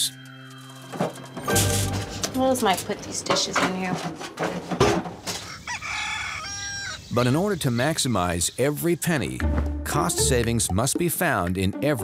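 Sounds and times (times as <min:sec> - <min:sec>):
rooster crowing: 0:05.3 - 0:07.1.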